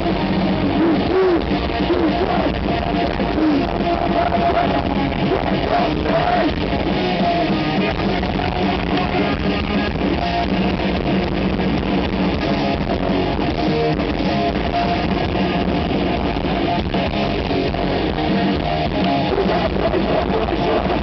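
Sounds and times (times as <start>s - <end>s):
punk band playing live: 0.0s - 21.0s.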